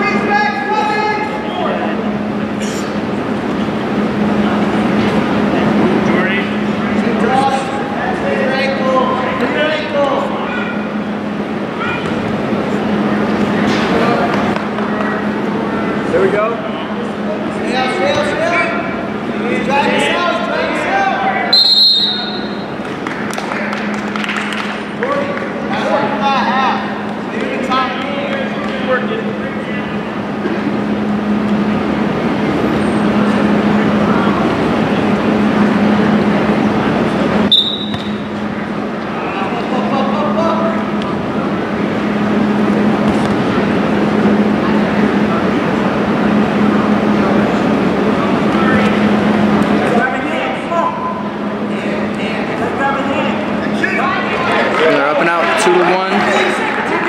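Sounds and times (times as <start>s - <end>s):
referee's whistle blasts: 21.5s - 22.7s, 37.5s - 38.3s.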